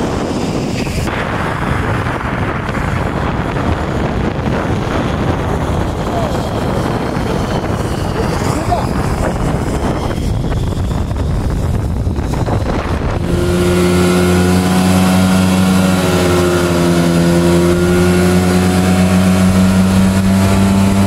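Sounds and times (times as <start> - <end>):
snowmobile engine running: 0.0 - 21.0
wind on microphone: 0.0 - 21.0.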